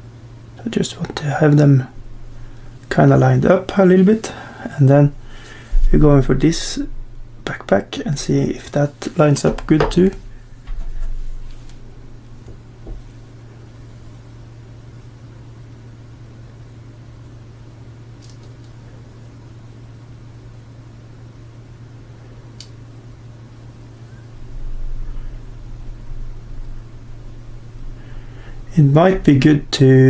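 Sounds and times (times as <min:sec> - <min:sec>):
faint background hiss: 0:00.0 - 0:30.0
steady low hum: 0:00.0 - 0:30.0
soft low rumble: 0:05.1 - 0:07.4, 0:24.0 - 0:29.9
faint clicks: 0:22.6 - 0:22.8.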